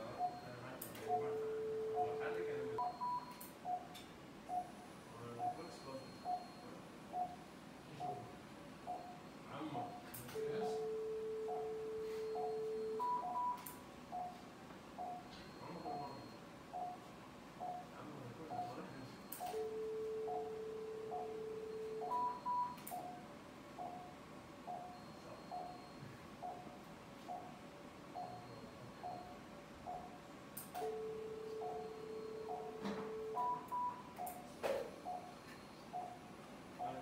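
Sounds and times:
energy device steady activation tone: 0.0s - 14.4s, 15.0s - 37.0s
patient monitor beeping: 0.0s - 37.0s.

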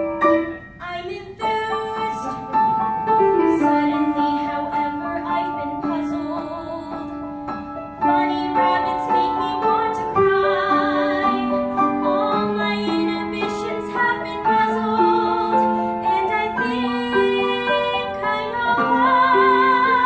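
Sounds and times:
instrumental accompaniment: 0.0s - 20.0s
person singing with vibrato: 8.0s - 20.0s.

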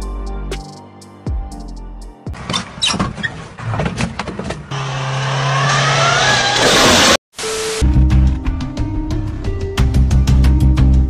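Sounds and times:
car engine revving: 4.7s - 7.2s.

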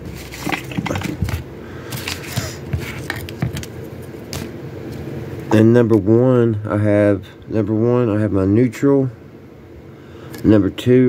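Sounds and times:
handling clicks and rustles: 0.0s - 5.0s.

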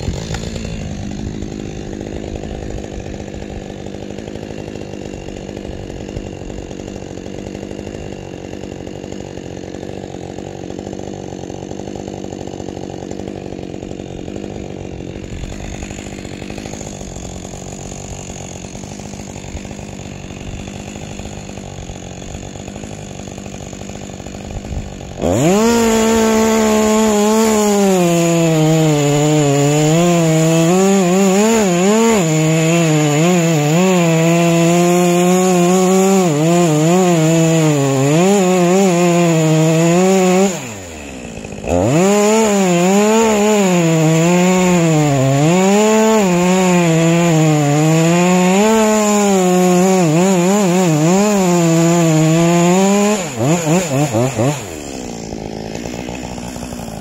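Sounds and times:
chainsaw cutting into tree trunk: 0.0s - 57.0s.

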